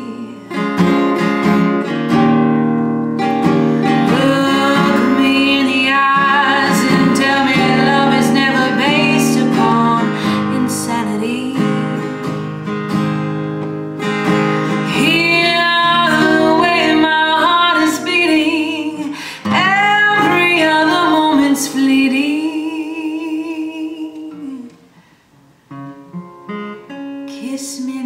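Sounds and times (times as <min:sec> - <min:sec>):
woman singing jazz melody: 0:00.0 - 0:00.8, 0:03.9 - 0:12.4, 0:14.8 - 0:24.8, 0:27.2 - 0:28.0
acoustic guitar: 0:00.0 - 0:28.0.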